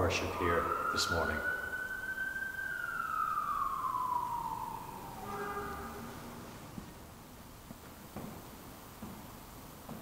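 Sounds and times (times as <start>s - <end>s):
siren falling in pitch: 0.0s - 6.8s.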